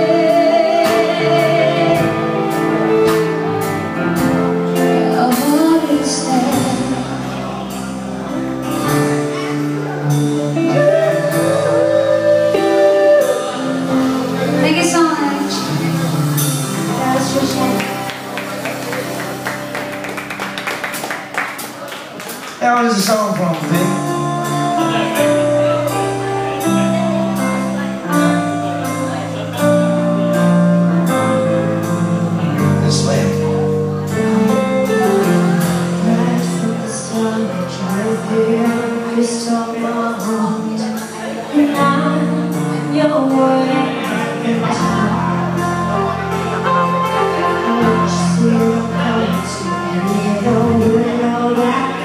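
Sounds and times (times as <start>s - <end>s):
guitar and band chords: 0.0s - 52.0s.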